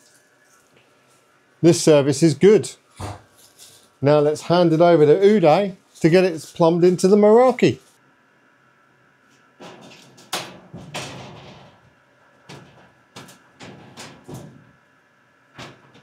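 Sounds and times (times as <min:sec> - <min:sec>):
faint steady whine: 0:00.0 - 0:16.0
hands handling cables in metal rack: 0:03.0 - 0:04.0, 0:09.3 - 0:14.7.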